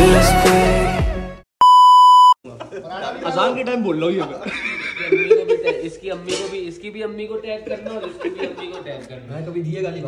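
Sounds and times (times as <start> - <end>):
man's voice: 0.0 - 0.9
background music: 0.0 - 1.4
censor bleep tone: 1.6 - 2.4
laughter: 2.5 - 6.0, 7.6 - 9.0.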